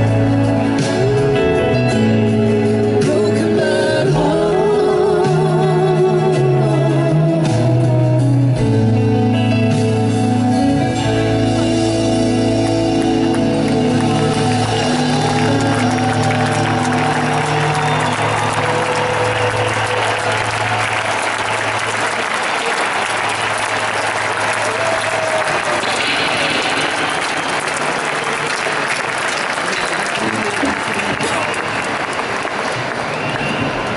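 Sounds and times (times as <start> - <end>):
audience applauding and cheering: 10.9 - 33.9.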